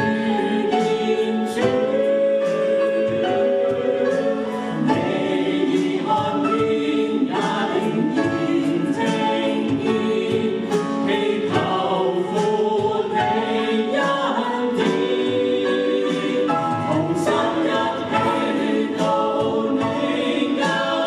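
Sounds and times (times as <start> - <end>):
group singing worship song: 0.0 - 21.0.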